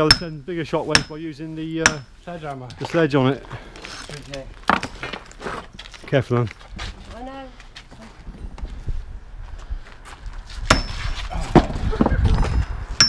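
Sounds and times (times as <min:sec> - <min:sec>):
sledgehammer clanging on steel tube: 0:00.0 - 0:01.2, 0:01.8 - 0:02.1, 0:10.7 - 0:11.0
rumbling masonry: 0:00.0 - 0:13.0.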